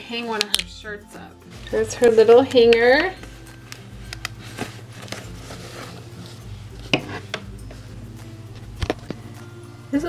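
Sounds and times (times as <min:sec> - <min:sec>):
soft background music: 0:00.0 - 0:10.0
plastic hanger clicks and taps: 0:00.4 - 0:00.7.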